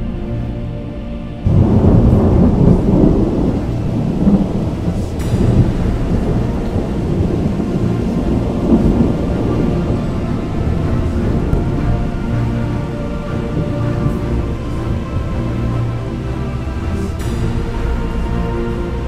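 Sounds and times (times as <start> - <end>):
background music with held tones: 0.0 - 19.0
thunder rumble: 1.4 - 19.0.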